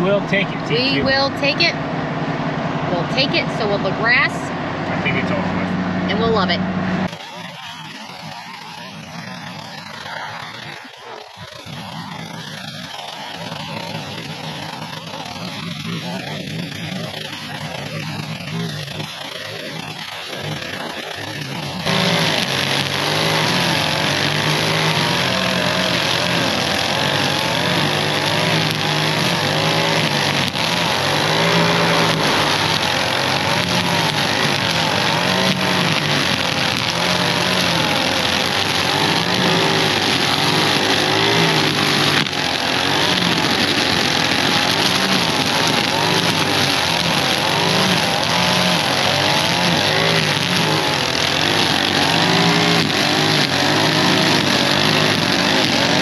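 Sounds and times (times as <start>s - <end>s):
string trimmer engine revving: 0.0s - 56.0s.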